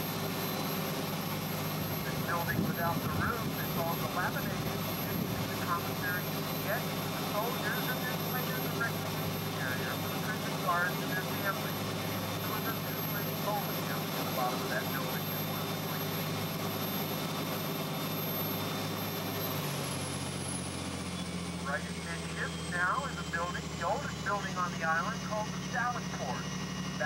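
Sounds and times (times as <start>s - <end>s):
boat engine humming: 0.0s - 27.0s.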